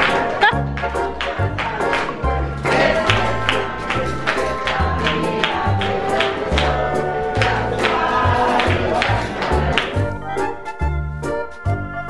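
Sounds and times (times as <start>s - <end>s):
upbeat music with percussive beat: 0.0s - 12.0s.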